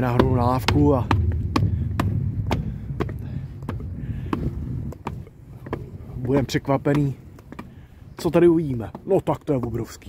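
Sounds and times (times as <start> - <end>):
low rumble: 0.0 - 6.5
footsteps on concrete stairs: 0.0 - 10.0.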